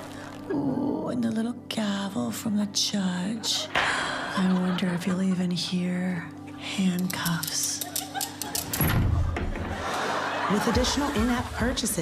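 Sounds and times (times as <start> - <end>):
handcuff ratchet clicking: 6.9 - 8.8.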